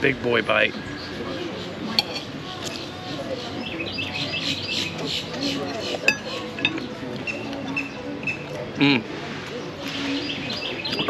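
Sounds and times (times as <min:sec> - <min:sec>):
background chatter: 0:00.0 - 0:11.0
birds chirping: 0:00.0 - 0:11.0
fork clinking on plate: 0:01.9 - 0:02.8, 0:06.0 - 0:06.8.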